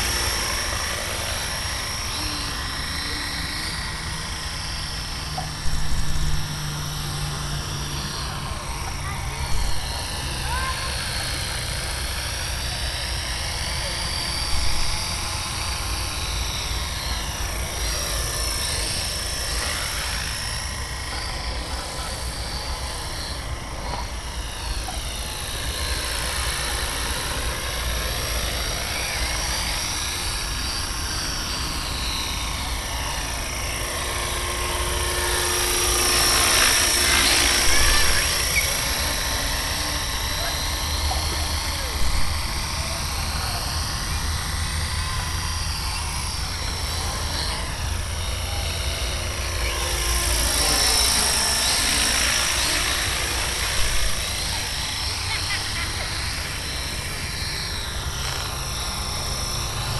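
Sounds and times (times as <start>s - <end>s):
rc helicopter rotor whine: 0.0s - 59.9s.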